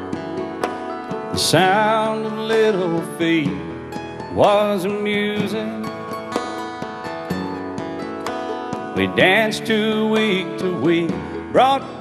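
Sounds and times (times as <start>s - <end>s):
country band playing: 0.0s - 12.0s
picked acoustic guitar notes: 0.0s - 12.0s.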